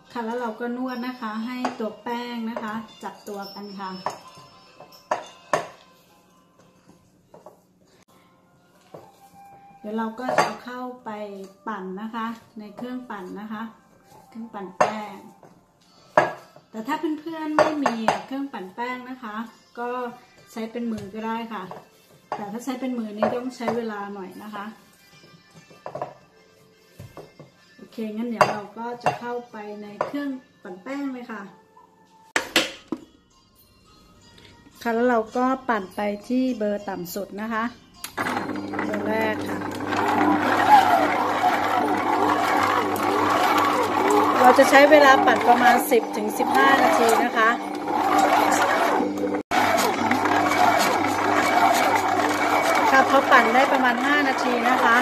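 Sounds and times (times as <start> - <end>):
stand mixer motor humming: 38.2 - 55.0.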